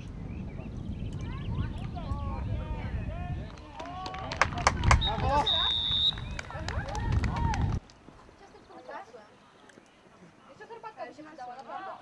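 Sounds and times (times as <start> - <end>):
referee's whistle: 5.0 - 6.4.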